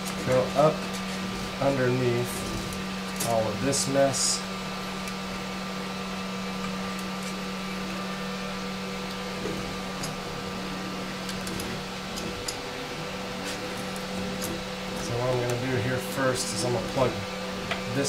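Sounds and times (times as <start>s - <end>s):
fan hum: 0.0s - 18.0s
wires being handled: 0.0s - 18.0s.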